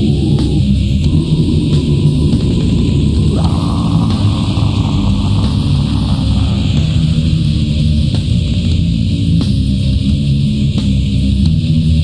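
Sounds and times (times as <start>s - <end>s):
steady tape hiss: 0.0s - 10.6s
distorted metal guitars and drums: 0.0s - 12.0s.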